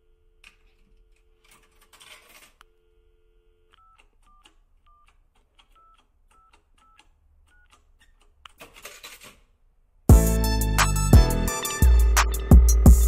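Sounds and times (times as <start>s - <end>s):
telephone dial tone: 0.4s - 7.7s.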